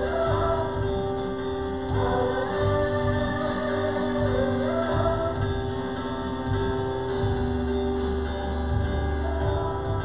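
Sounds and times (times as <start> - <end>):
women singing: 0.0 - 7.6
band accompaniment: 0.0 - 10.0.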